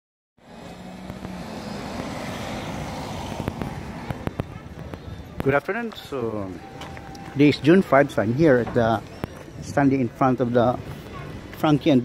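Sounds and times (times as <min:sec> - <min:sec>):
motor vehicle passing: 0:00.4 - 0:09.6.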